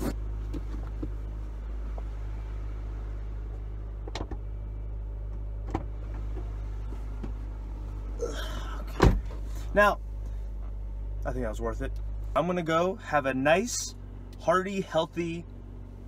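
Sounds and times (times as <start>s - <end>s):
low hum inside car: 0.0s - 16.0s.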